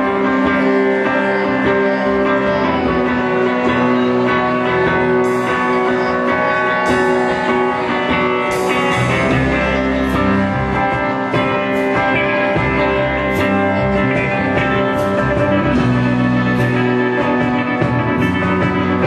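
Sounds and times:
bass low end: 0.0s - 19.0s
electric guitar sustained chords: 0.0s - 19.0s.

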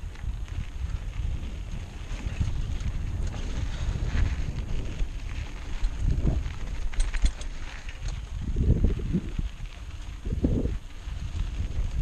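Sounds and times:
bike tyres crackling on trail: 0.0s - 12.0s
wind buffeting microphone: 0.0s - 12.0s.

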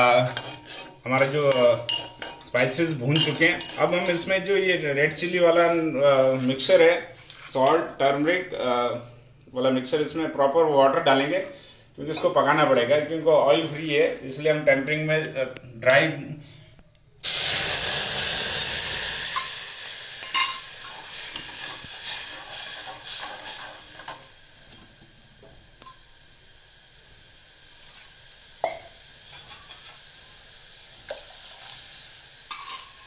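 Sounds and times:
metal ladle scraping pot: 0.0s - 4.3s
spices sizzling in a pot: 0.0s - 8.6s, 17.2s - 33.0s
simmering hiss: 0.0s - 33.0s.

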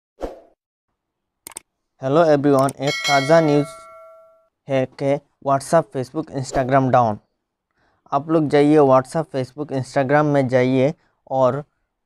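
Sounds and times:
sharp clicks: 1.4s - 1.6s.

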